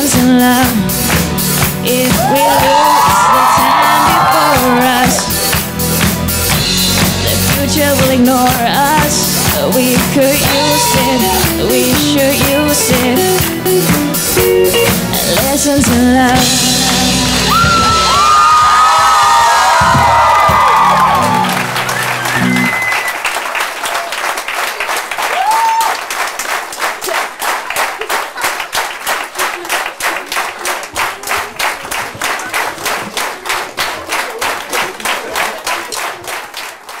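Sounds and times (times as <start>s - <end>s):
rhythmic clapping in unison: 0.0s - 37.0s
audience cheering: 1.9s - 6.6s, 10.2s - 12.1s, 17.3s - 37.0s.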